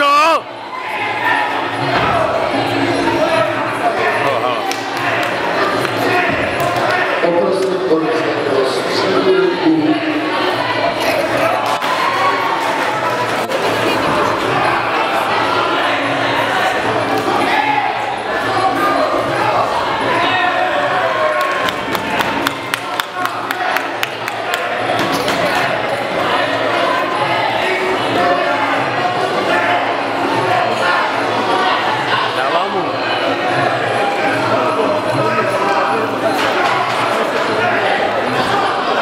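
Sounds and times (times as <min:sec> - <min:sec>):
crowd voices in a hall: 0:00.0 - 0:39.0.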